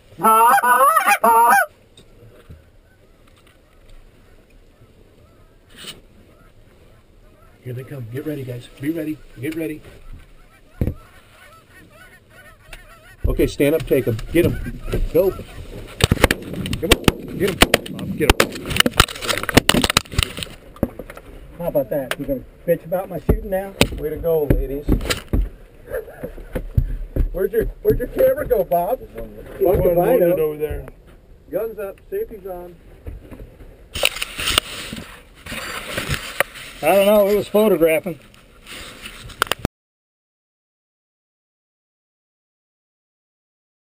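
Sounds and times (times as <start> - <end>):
geese honking: 0.2 - 1.8, 2.7 - 16.0
dull knock: 10.8 - 11.0
camera rustling against cloth: 38.2 - 39.7.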